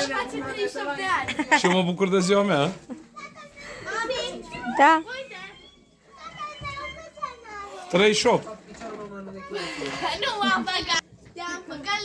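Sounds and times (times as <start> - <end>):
children talking and playing: 0.0 - 12.0.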